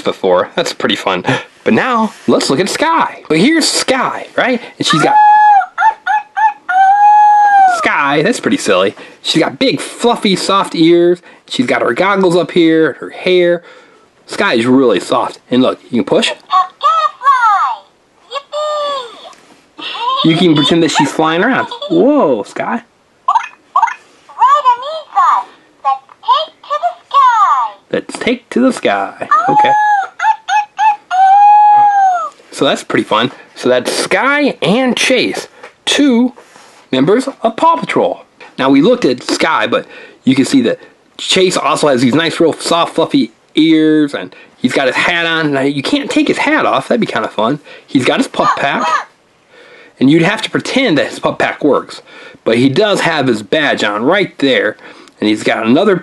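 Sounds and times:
toy speaker character voice: 4.9 - 7.8, 16.4 - 22.1, 23.3 - 27.8, 29.3 - 32.3, 48.4 - 49.1.

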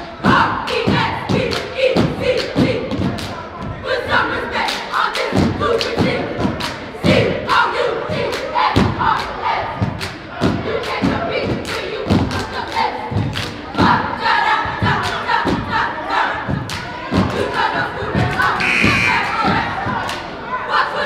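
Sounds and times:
girls shouting a chant: 0.1 - 21.0
hands clapping: 6.6 - 6.8, 10.0 - 10.2, 10.8 - 13.6.

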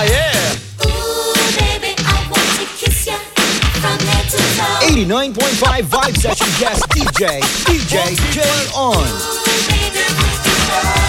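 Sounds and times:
record scratching on turntable: 5.8 - 8.2
music mix playing: 5.8 - 8.4.

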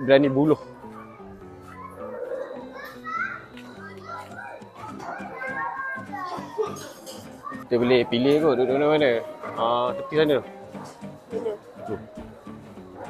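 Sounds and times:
background music with held notes: 0.0 - 13.0
children calling and chattering: 0.0 - 13.0.

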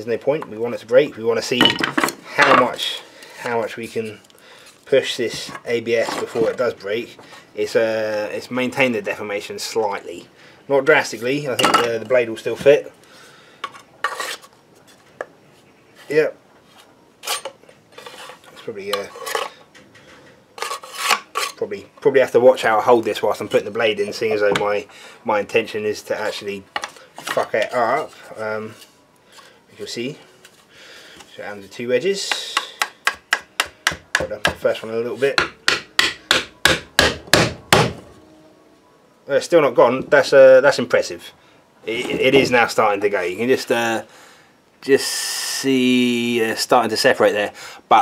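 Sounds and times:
knife scraping into plastic sheath: 14.0 - 14.5, 20.6 - 21.6
mallet striking wooden wedges: 32.2 - 34.7, 35.3 - 38.1.

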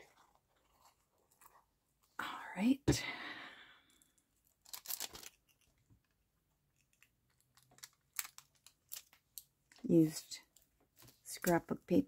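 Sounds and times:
soft paper rustling: 0.0 - 2.1.

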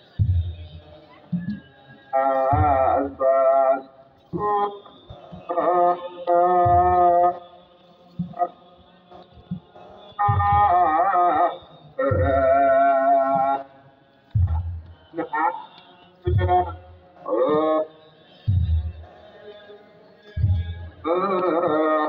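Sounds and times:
hymn chanted in phrases: 0.0 - 22.0
deep drum beats: 10.2 - 10.8, 14.3 - 14.9, 16.2 - 16.9, 18.5 - 19.1.

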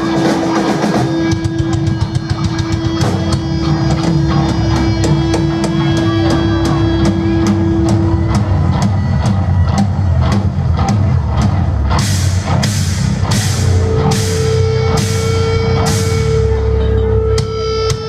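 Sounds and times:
distorted guitar: 0.0 - 18.0
drum kit beat: 0.0 - 18.0
rock band playing live: 0.0 - 18.0.

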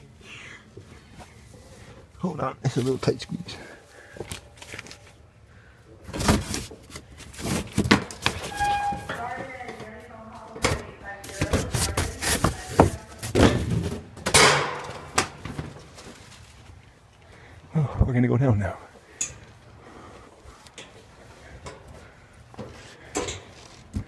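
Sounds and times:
cardboard boxes bumped and scraped: 6.1 - 9.1, 11.3 - 14.0.

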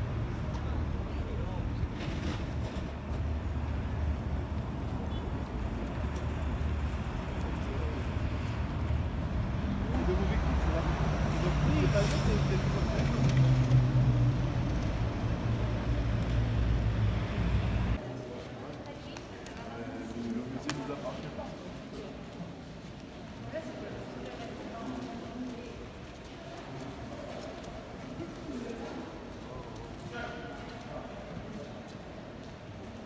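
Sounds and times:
road traffic: 0.0 - 18.0
people's voices: 0.0 - 33.0.

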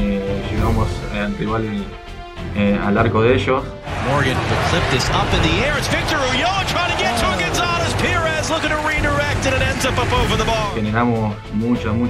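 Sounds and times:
players shouting: 3.9 - 10.8.

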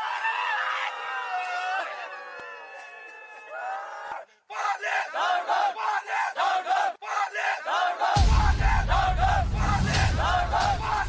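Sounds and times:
men chanting in unison: 4.6 - 11.0.

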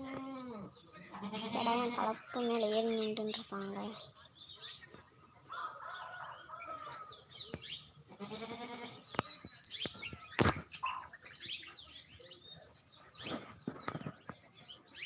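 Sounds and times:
goat bleating: 0.1 - 2.1, 8.1 - 9.0.

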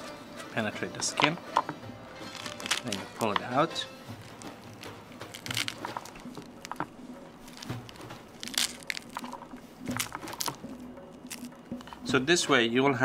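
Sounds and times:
pomegranate rind cracking and tearing: 1.1 - 12.1.

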